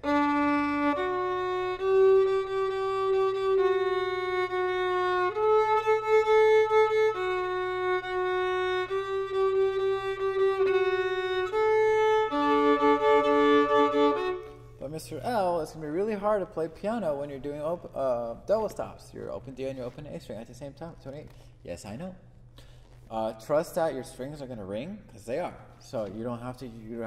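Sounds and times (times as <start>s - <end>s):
solo violin playing: 0.0s - 14.8s.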